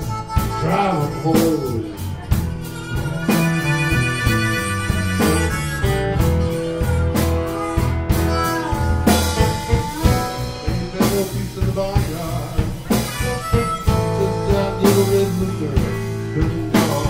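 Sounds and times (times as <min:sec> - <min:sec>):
drum and cymbal hits: 0:00.0 - 0:17.0
live blues-rock band: 0:00.0 - 0:17.0.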